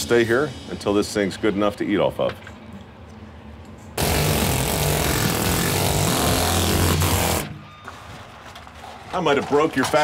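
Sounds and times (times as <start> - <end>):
pneumatic chisel hammering metal: 4.0 - 7.6.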